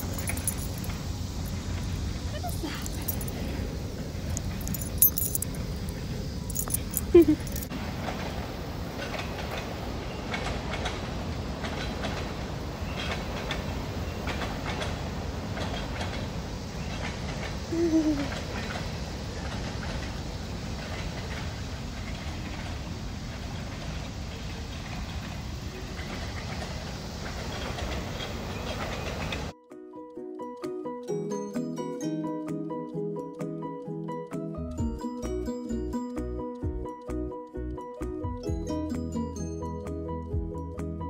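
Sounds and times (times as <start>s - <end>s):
light handling clicks and steps: 0.0s - 1.9s, 4.3s - 7.7s
background music: 29.6s - 41.0s.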